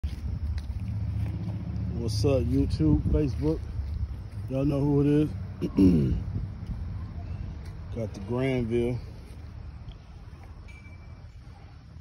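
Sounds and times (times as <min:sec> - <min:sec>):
steady low rumble: 0:00.0 - 0:12.0
wind noise on microphone: 0:02.5 - 0:04.7, 0:05.4 - 0:07.9.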